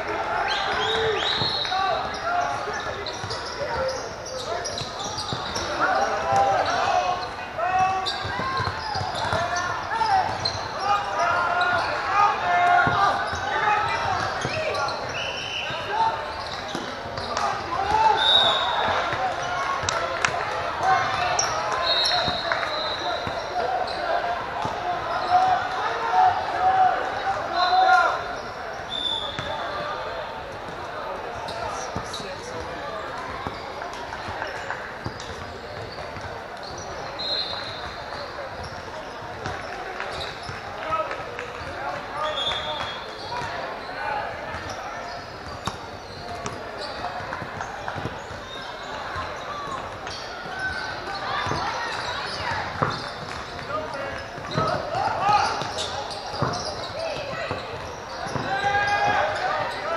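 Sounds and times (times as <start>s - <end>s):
spectators talking and calling out: 0.0s - 59.9s
basketball bouncing on hardwood floor: 52.8s - 53.0s.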